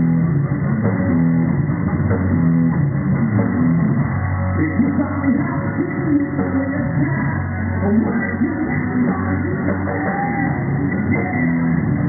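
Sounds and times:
bass guitar: 0:00.0 - 0:12.0
drum kit: 0:00.0 - 0:12.0
electric guitar riff: 0:00.0 - 0:12.0.

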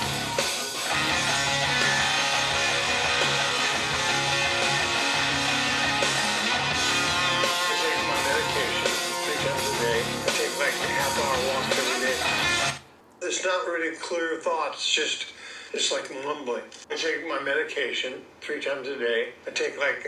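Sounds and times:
electric guitar solo: 0:00.0 - 0:10.2
steady bass line: 0:00.0 - 0:12.8.

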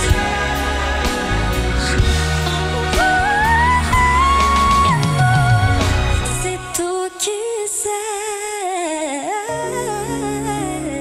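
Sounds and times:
low bass and accompaniment chords: 0:00.0 - 0:06.8
woman singing with vibrato: 0:02.9 - 0:11.0.

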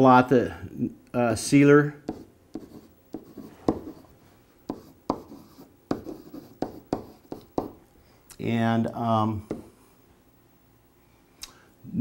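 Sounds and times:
marker writing on whiteboard: 0:02.0 - 0:07.8, 0:09.4 - 0:09.8.

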